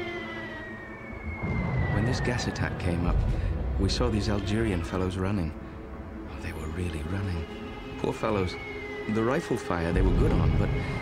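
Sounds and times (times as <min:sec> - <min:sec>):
falling whistle of artillery shell: 0:00.0 - 0:03.5
low rumble: 0:01.2 - 0:07.0.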